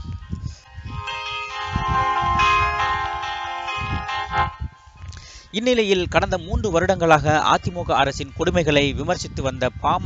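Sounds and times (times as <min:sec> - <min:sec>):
held tones over low beat: 0:00.0 - 0:06.3.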